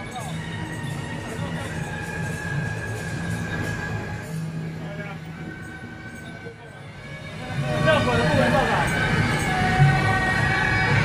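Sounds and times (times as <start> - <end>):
people's voices: 0.0 - 11.0
street traffic: 0.0 - 11.0.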